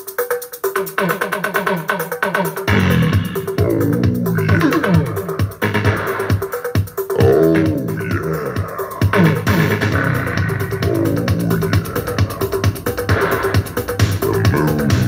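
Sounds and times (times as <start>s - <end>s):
loud electronic music: 0.0s - 15.0s.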